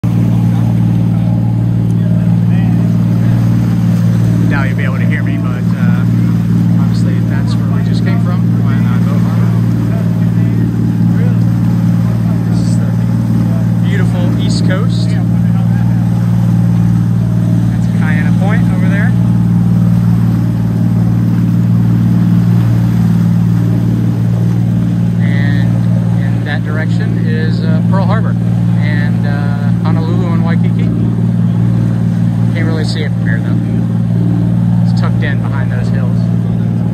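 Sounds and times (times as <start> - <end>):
boat engine humming: 0.0 - 36.9.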